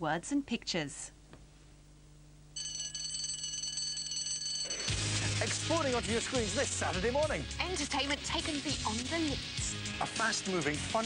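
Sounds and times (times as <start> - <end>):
alarm clock ringing: 2.6 - 6.0.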